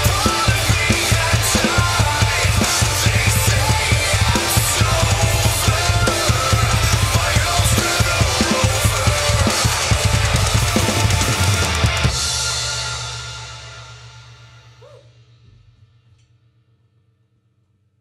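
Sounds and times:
heavy music track: 0.0s - 14.8s
drum kit played hard: 0.0s - 15.4s.

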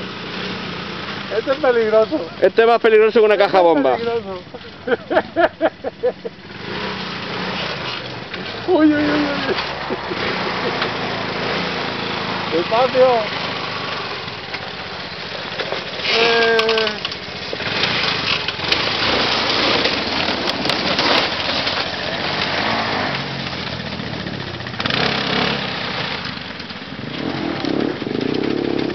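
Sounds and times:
quad engines running: 0.0s - 28.9s
person calling out: 16.1s - 17.1s.

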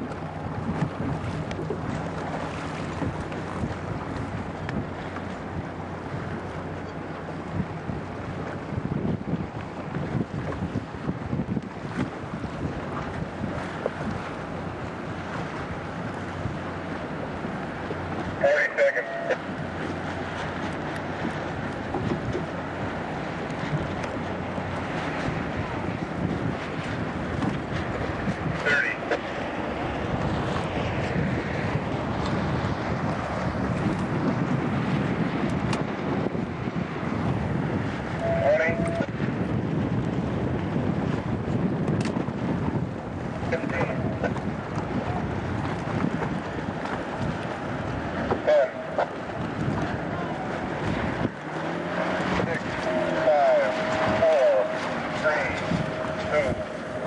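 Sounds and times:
sailboat water rush: 0.0s - 57.0s
wind buffeting microphone: 0.0s - 57.0s.

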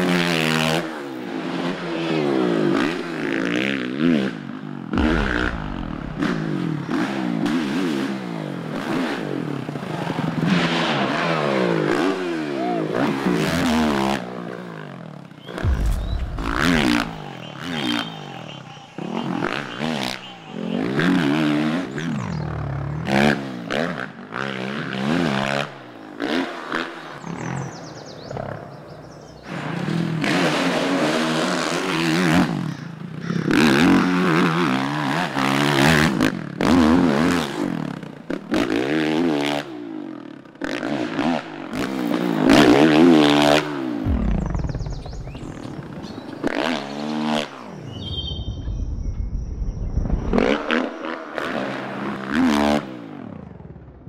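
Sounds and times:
dirt bike engine revving: 0.0s - 27.9s, 28.8s - 53.7s.

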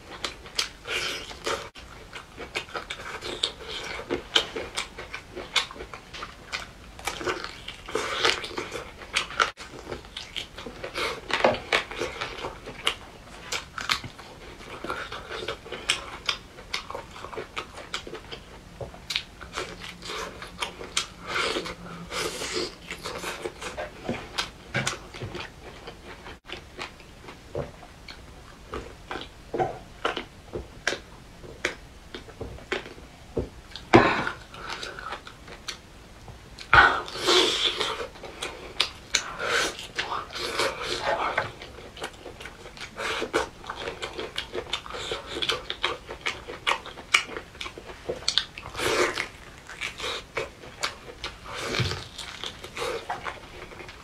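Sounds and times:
chewing and biting: 0.1s - 27.4s, 36.6s - 54.0s.

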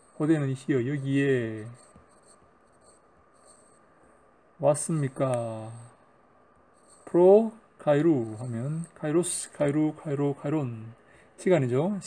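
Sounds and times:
stylus scratching on tablet screen: 0.0s - 6.0s, 6.6s - 10.8s.

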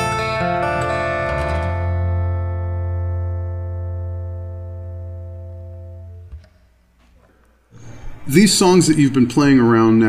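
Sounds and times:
acoustic guitar chord strummed: 0.0s - 6.4s.

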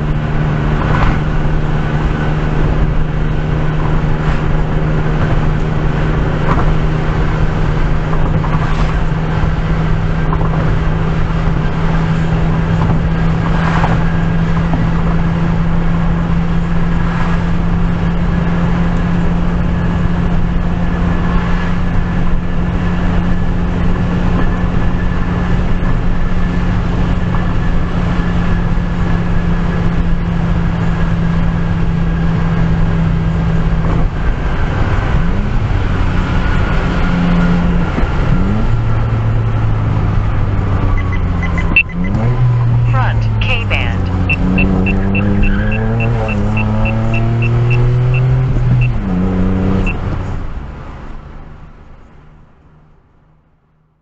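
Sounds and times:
car engine hum: 0.0s - 54.0s
road noise: 0.0s - 54.0s.

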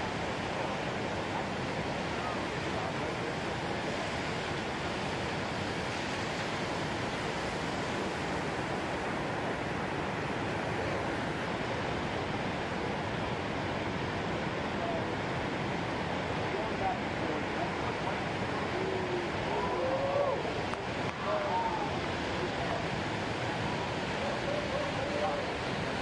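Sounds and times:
ocean surf rushing: 0.0s - 26.0s.

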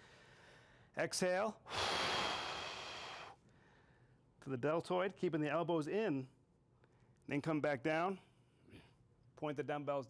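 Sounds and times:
man exhaling forcefully: 1.7s - 3.4s.

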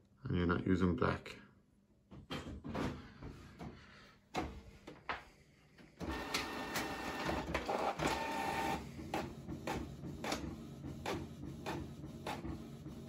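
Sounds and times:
printer clicks and whirs: 6.0s - 13.0s
printer motor whirring: 6.0s - 13.0s.

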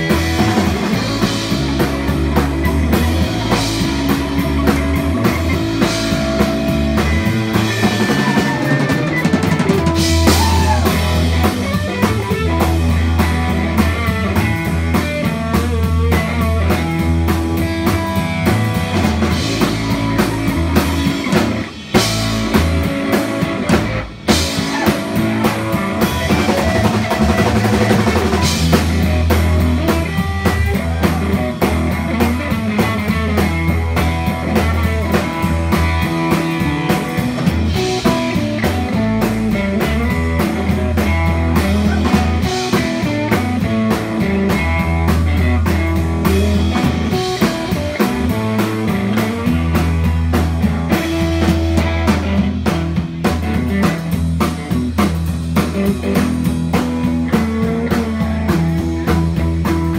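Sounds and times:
drum kit beat: 0.0s - 59.9s
electric guitars: 0.0s - 59.9s.

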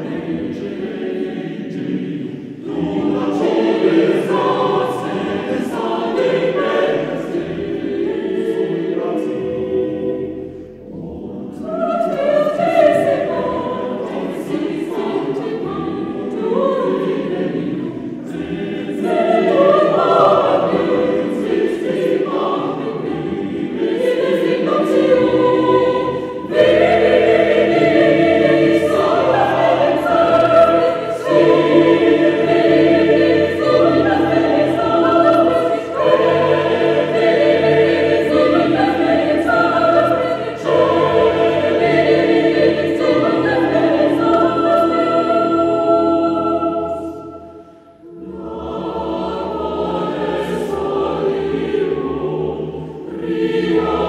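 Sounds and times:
mixed choir singing unaccompanied: 0.0s - 54.0s.

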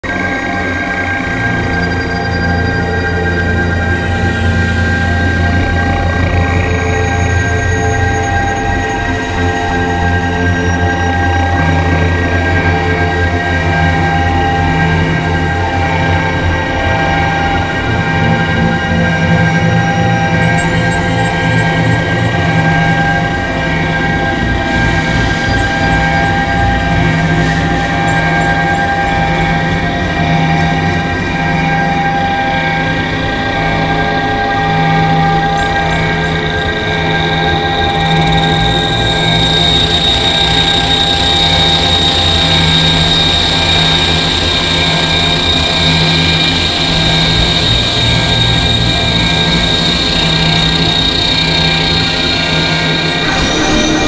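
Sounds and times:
low pulsing tone: 0.0s - 54.0s
synthesizer drone: 0.0s - 54.0s
high thin tone: 53.0s - 54.0s.

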